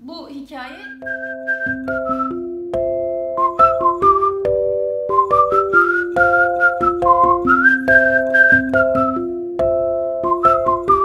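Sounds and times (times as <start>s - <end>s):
held chords: 0.8s - 11.0s
whistled melody: 0.8s - 11.0s
light clicking beat: 0.9s - 11.0s.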